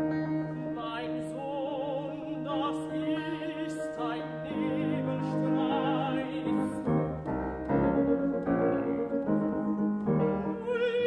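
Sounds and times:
grand piano chords: 0.0s - 11.0s
woman singing with vibrato: 0.1s - 6.9s, 10.6s - 11.0s.

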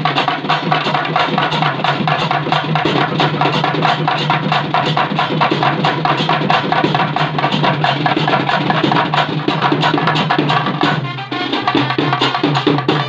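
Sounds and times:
barrel drums beaten fast: 0.0s - 13.0s
held brass note: 11.0s - 13.0s.

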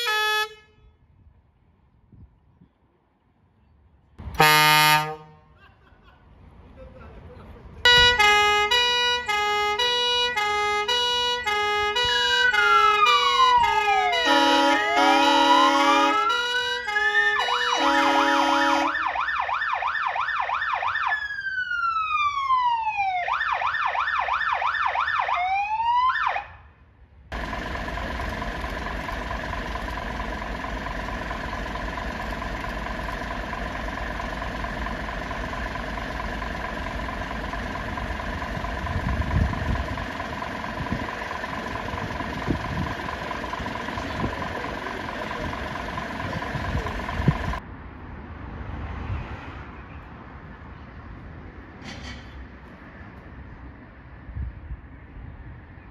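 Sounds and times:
fire truck electronic siren: 7.8s - 26.7s, 28.7s - 47.6s
engine idling with high whine: 7.9s - 20.0s, 27.3s - 47.6s.

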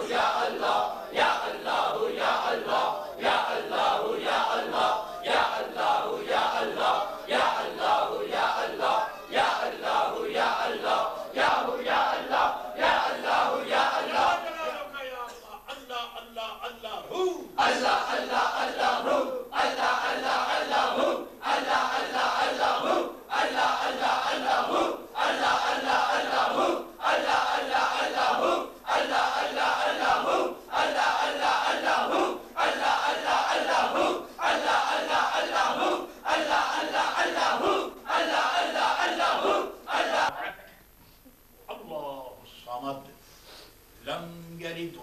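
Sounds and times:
men chanting in unison: 0.0s - 15.0s, 16.8s - 40.4s.

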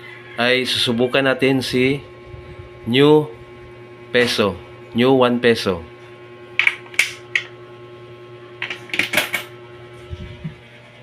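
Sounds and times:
low electrical hum: 0.0s - 11.0s
coin mechanism clicks and rattle: 8.6s - 9.5s.

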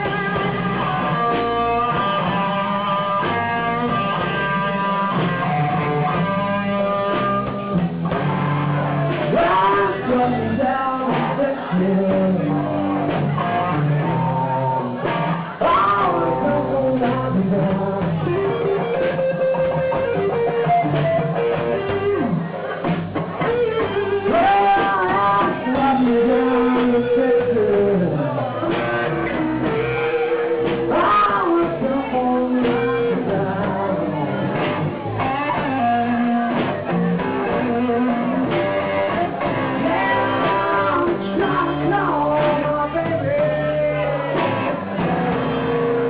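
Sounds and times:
bass and drums: 0.0s - 46.0s
blues guitar lines: 0.0s - 46.0s.

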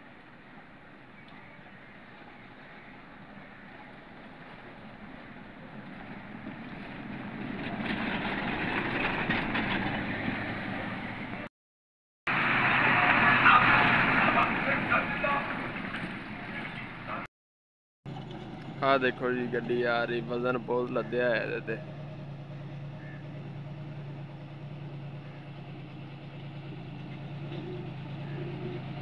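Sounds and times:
buses driving on gravel road: 0.0s - 11.5s, 12.3s - 17.3s, 18.1s - 29.0s.

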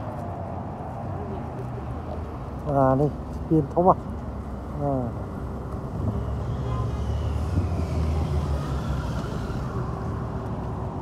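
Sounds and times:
street traffic: 0.0s - 11.0s
sports car engine rumble passing: 0.6s - 11.0s.

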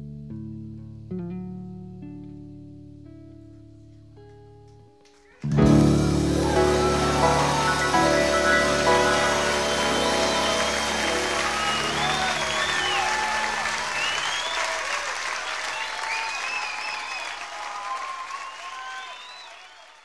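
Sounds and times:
audience applauding: 5.4s - 20.0s
band's sustained chord: 5.6s - 14.2s
whistles and cheers: 5.8s - 20.0s.

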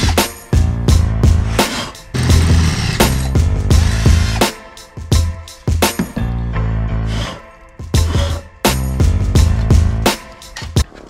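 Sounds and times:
deep bass notes: 0.1s - 1.6s, 2.2s - 4.4s, 6.2s - 7.3s, 8.8s - 10.1s.

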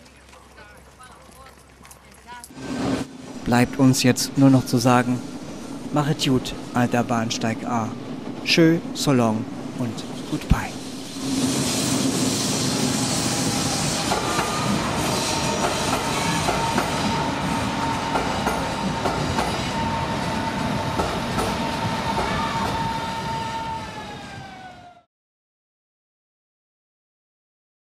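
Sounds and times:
electric train passing: 2.5s - 25.1s
train motor whine: 2.6s - 25.1s.

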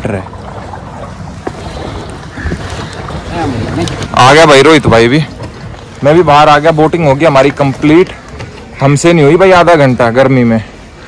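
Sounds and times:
water against boat hull: 0.0s - 11.0s.

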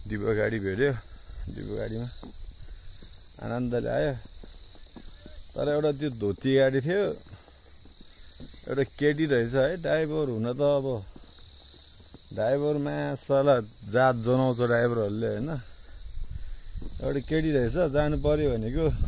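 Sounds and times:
man talking: 0.0s - 2.2s, 3.4s - 4.3s, 5.2s - 7.4s, 8.6s - 11.1s, 12.3s - 15.7s, 17.0s - 19.0s
high-pitched insect chorus: 0.0s - 19.0s.

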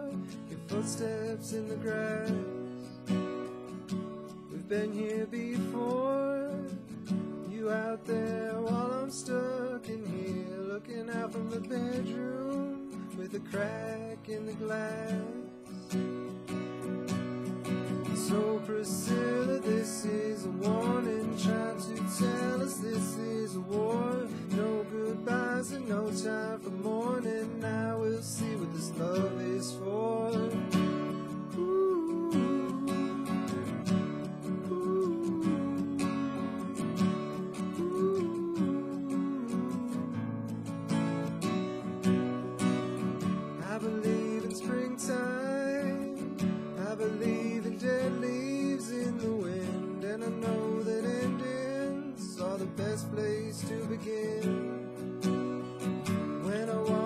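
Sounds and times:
acoustic guitar strumming: 0.0s - 57.0s.

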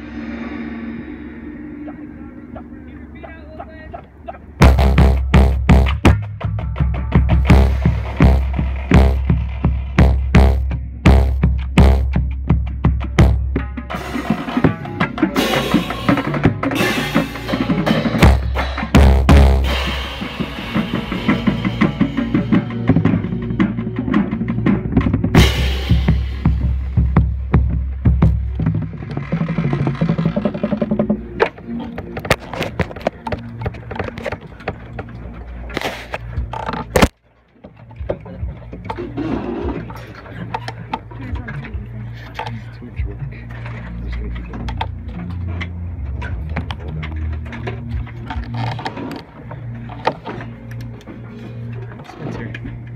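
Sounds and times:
deep bass drum strokes: 0.0s - 2.9s, 4.6s - 31.5s
voices: 0.0s - 4.6s, 37.7s - 52.9s
marching band playing: 4.6s - 37.1s.

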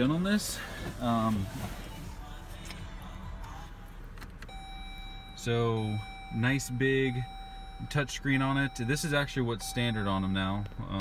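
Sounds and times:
low cabin hum: 0.0s - 11.0s.

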